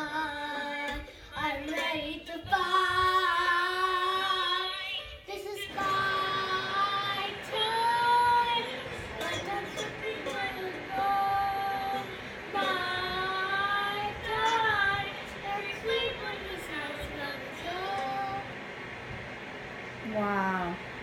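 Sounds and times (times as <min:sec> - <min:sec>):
girl singing long notes: 0:00.0 - 0:18.5.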